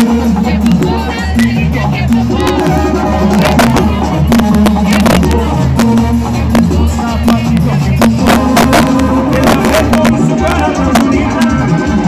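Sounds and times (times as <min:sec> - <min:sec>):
brass band music over loudspeakers: 0:00.0 - 0:12.0
drum hits: 0:00.0 - 0:12.0
low bass line: 0:00.0 - 0:12.0.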